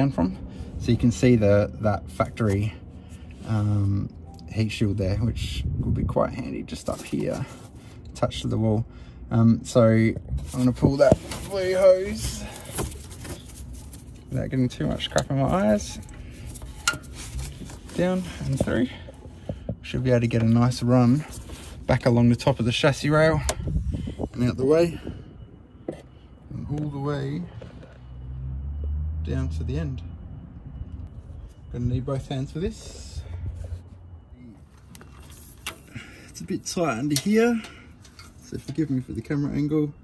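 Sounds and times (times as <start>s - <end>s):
handling noises: 10.4s - 22.2s, 31.0s - 39.1s
hose handling noises: 15.1s - 20.6s, 34.7s - 36.1s.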